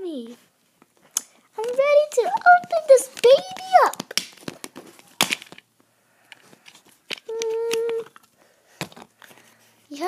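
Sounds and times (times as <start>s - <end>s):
sharp plastic clack: 1.1s - 5.6s
plastic toy fruit tapping: 1.6s - 5.5s.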